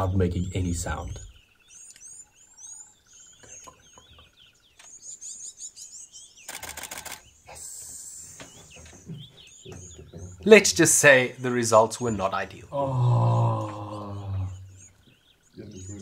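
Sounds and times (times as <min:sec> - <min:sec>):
small birds chirping: 0:00.0 - 0:16.0
camera shutter burst: 0:06.4 - 0:07.2.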